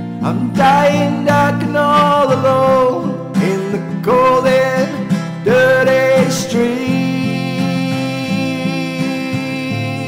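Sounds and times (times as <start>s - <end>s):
strummed acoustic guitar: 0.0s - 10.0s
person singing: 0.1s - 10.0s.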